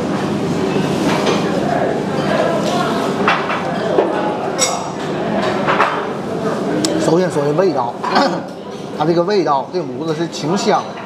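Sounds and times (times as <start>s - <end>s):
dining room noise: 0.0s - 11.0s.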